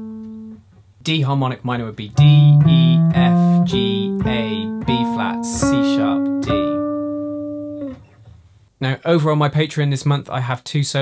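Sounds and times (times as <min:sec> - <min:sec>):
jazz guitar picking single notes: 0:00.0 - 0:01.0, 0:01.7 - 0:08.6.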